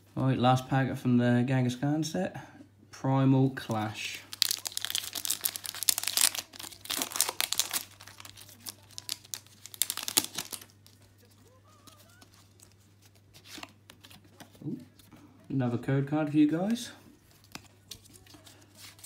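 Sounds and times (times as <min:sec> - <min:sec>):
foil wrapper crinkling: 0:03.8 - 0:14.2, 0:17.3 - 0:19.0.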